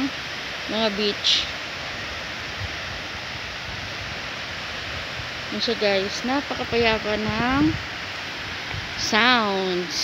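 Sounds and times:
waves washing onto beach: 0:00.0 - 0:10.0.

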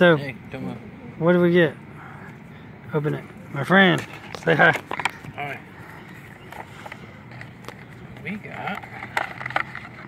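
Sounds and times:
steady low background noise: 0:00.0 - 0:10.0.

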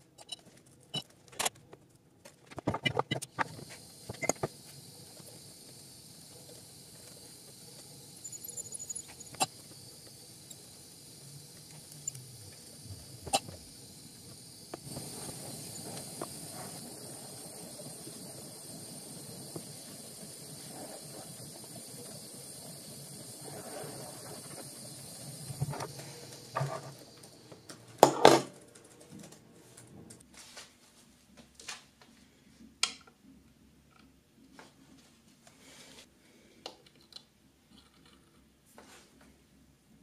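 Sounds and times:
gas torch hissing: 0:03.2 - 0:28.4.

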